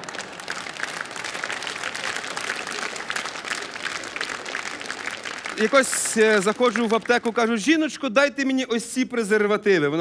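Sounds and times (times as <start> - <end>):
audience applauding: 0.0 - 7.7.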